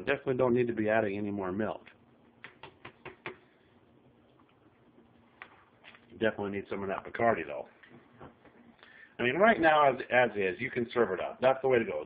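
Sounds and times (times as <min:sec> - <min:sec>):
faint clicks and taps: 0:01.8 - 0:03.5.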